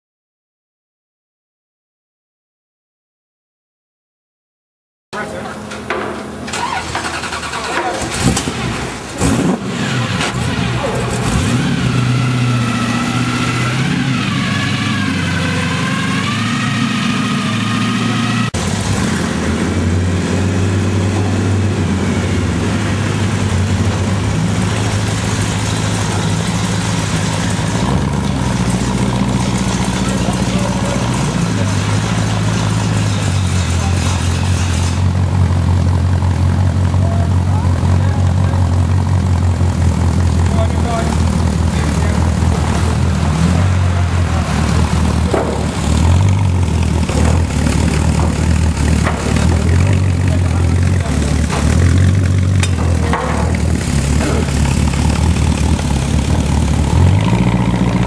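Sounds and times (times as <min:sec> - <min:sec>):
voices: 0:05.2 - 0:09.3, 0:09.9 - 0:13.0, 0:25.5 - 0:34.5, 0:36.4 - 0:39.0, 0:40.3 - 0:46.3, 0:47.0 - 0:56.7
car engines idling: 0:05.2 - 0:58.0
engine starter clicks: 0:05.7 - 0:09.6.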